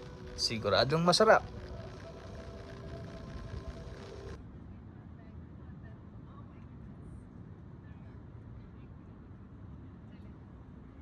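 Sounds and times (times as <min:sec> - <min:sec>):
background music of held notes: 0:00.0 - 0:04.4
street traffic rumble: 0:00.0 - 0:04.4.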